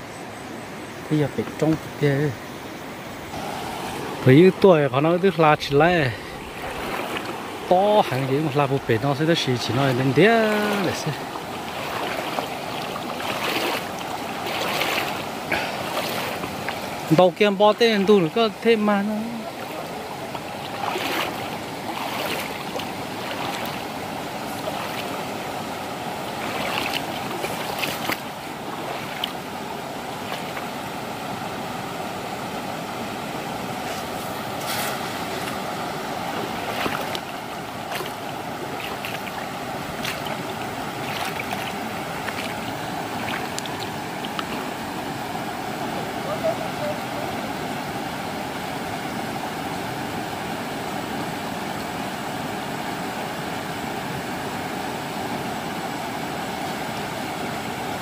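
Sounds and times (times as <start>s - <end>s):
stream rushing over rocks: 0.7s - 58.0s
splashes of wading: 3.2s - 31.8s, 33.6s - 50.3s.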